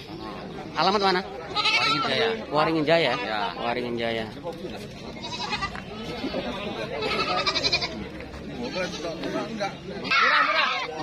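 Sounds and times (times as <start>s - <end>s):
crowd chatter: 0.0s - 11.0s
goats bleating: 0.8s - 3.6s, 5.1s - 9.3s, 10.0s - 11.0s.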